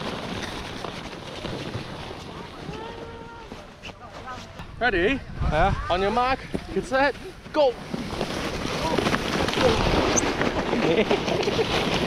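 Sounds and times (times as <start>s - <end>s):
sled scraping over snow: 0.0s - 4.8s, 5.9s - 12.0s
wind rushing over microphone: 4.6s - 11.4s.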